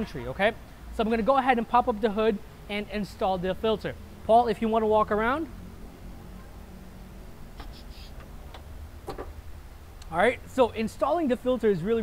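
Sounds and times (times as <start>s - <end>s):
low steady hum: 0.0s - 12.0s
car hood latch clicks: 8.2s - 9.4s.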